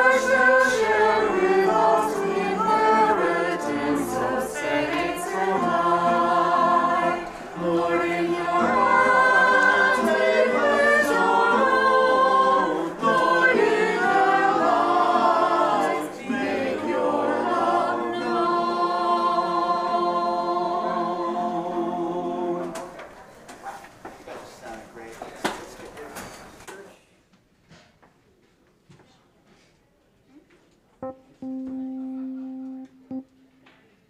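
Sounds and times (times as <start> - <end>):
choir singing: 0.0 - 22.8.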